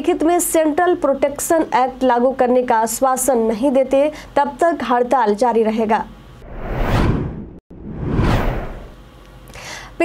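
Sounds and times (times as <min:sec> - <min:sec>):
whoosh sound effect: 0:06.4 - 0:09.0.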